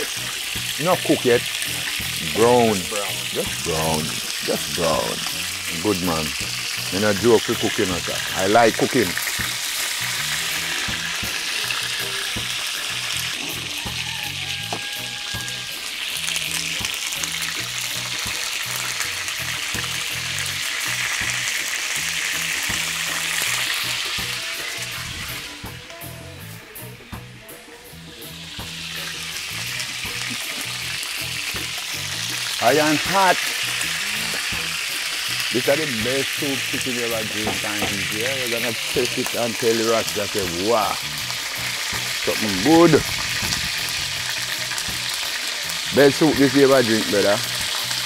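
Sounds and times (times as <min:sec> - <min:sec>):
chicken sizzling in hot oil: 0:00.0 - 0:48.0.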